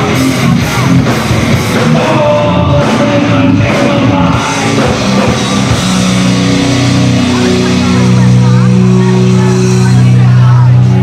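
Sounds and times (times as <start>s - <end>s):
electric guitar and bass chord: 0.0s - 11.0s.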